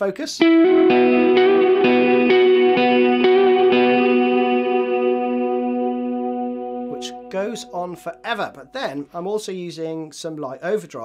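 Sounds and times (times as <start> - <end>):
clean electric guitar with reverb: 0.4 - 9.1.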